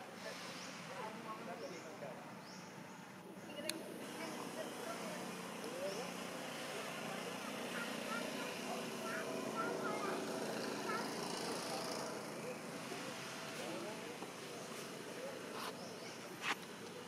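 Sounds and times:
outdoor ambience: 0.0 - 17.0.

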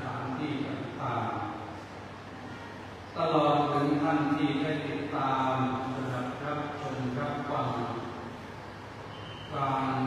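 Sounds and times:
man chanting in monotone: 0.0 - 1.8, 3.2 - 8.3, 9.4 - 10.0.

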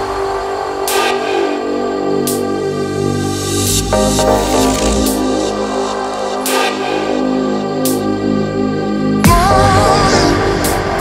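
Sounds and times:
deep bass: 2.9 - 6.2
layered synth tones: 3.2 - 6.4.

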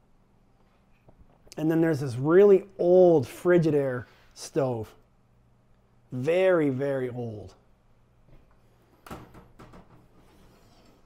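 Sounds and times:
oven door clicks and rattles: 9.0 - 10.2.

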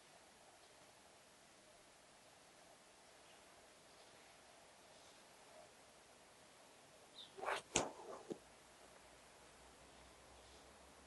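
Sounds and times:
sharp click: 7.4 - 8.4
swish: 7.4 - 8.4.

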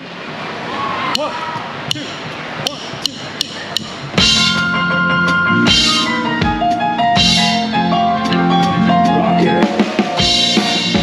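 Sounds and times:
crowd murmur: 0.6 - 11.0
drumsticks clicking together: 1.9 - 4.0.

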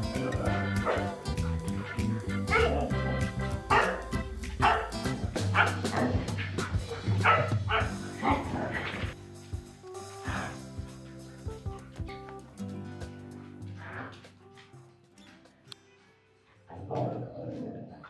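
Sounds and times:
dogs yipping and barking: 0.0 - 9.2
background music: 0.0 - 18.0.

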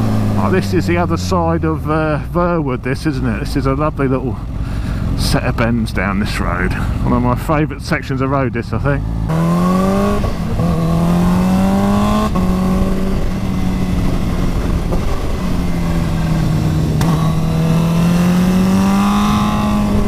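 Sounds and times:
motorcycle engine revving: 0.0 - 2.1, 8.8 - 20.0
wind rush: 9.5 - 20.0.

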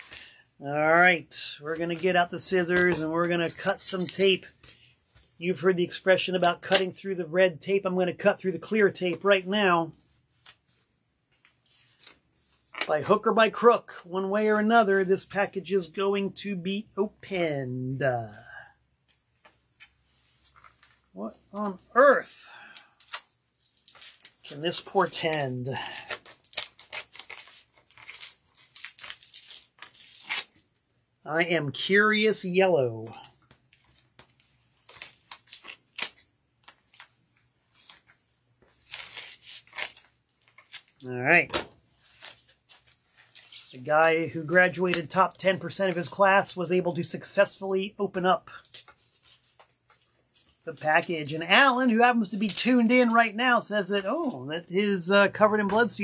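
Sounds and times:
paper rustling: 19.1 - 21.8, 23.0 - 30.9, 33.1 - 43.8, 48.5 - 51.5
envelope crinkling: 23.0 - 24.5, 25.8 - 31.0, 33.1 - 43.8.

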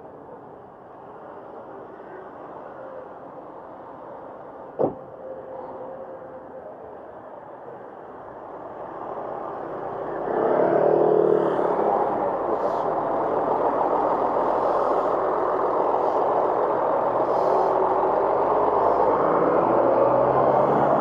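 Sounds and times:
diesel coach engine: 0.0 - 21.0
street traffic: 0.0 - 21.0.

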